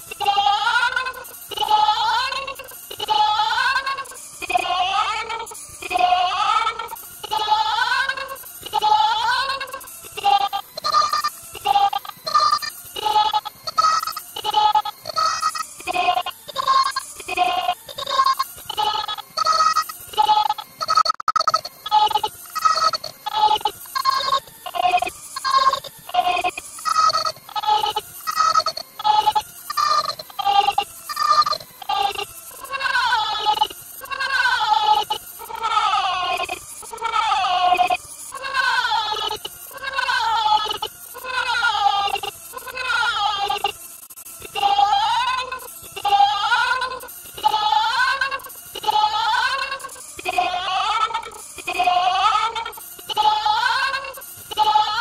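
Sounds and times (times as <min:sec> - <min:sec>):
distorted looped cartoon voice: 0:00.1 - 0:55.0.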